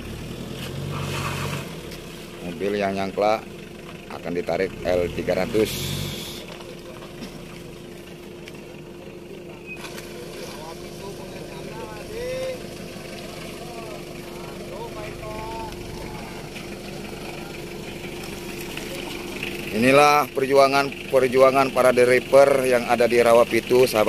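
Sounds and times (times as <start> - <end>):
engine idling: 0.0 - 24.0.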